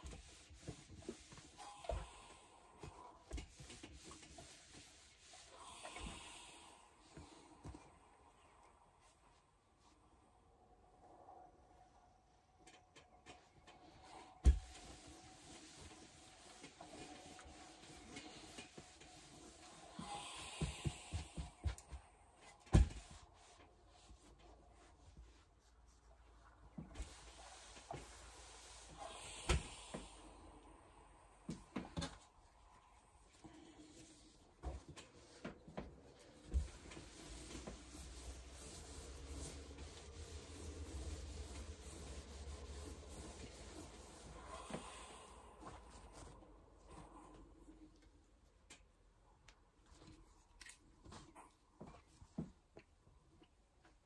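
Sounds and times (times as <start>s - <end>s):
iron sliding over fabric: 14.0s - 25.0s, 26.8s - 32.2s, 33.2s - 46.4s.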